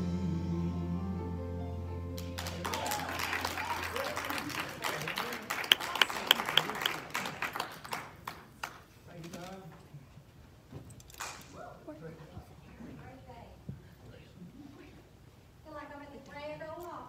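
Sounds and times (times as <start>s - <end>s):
congregation applauding: 2.2s - 8.9s.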